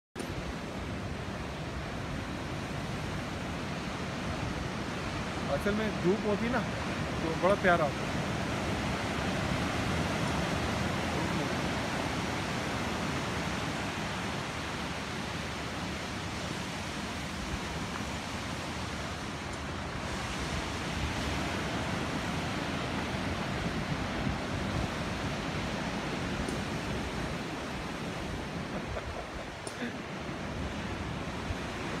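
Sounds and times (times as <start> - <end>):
wind: 0.1 - 32.0.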